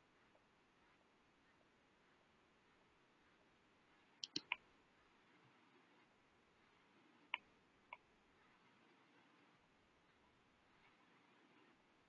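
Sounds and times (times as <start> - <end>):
quick sharp clicks: 4.2 - 4.6.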